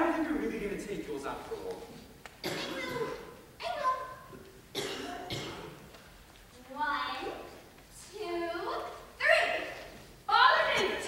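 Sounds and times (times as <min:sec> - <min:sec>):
person coughing: 0:04.7 - 0:05.8.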